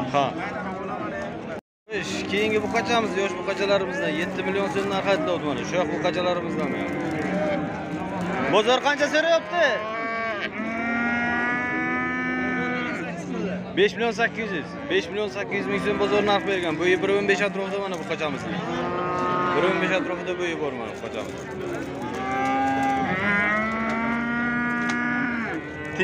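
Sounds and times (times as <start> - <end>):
calf mooing: 2.7 - 5.1, 5.7 - 13.0, 15.6 - 16.5, 18.6 - 20.3, 22.1 - 26.0.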